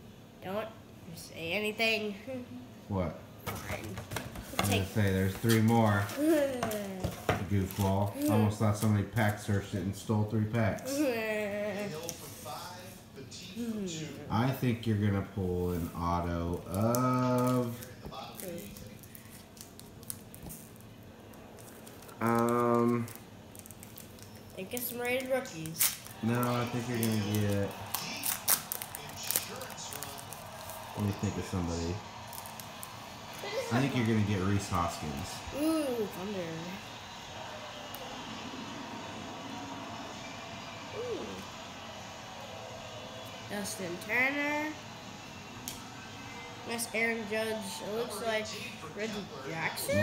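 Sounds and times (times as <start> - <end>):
steady background hum: 0.0 - 50.0
child saying ooh: 10.9 - 11.8, 35.6 - 36.2
wrapper crinkling: 16.5 - 31.4.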